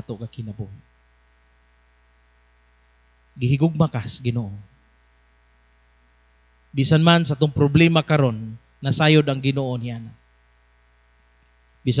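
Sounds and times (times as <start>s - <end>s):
man speaking: 0.0s - 0.8s, 3.4s - 4.7s, 6.8s - 10.2s
faint electrical mains hum: 0.0s - 12.0s.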